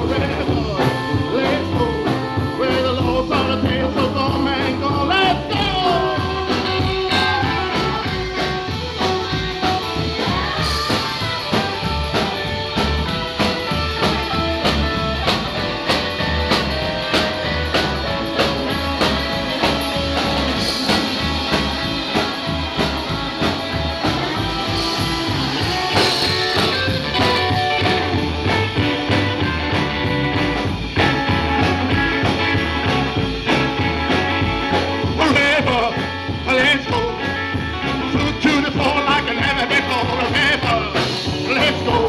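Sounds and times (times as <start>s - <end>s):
live rockabilly band playing: 0.0s - 42.0s.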